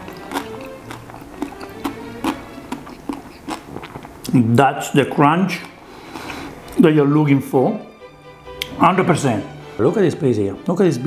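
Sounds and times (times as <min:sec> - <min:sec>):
person chewing crunchy food: 0:00.0 - 0:04.4
soft background music: 0:00.0 - 0:11.0.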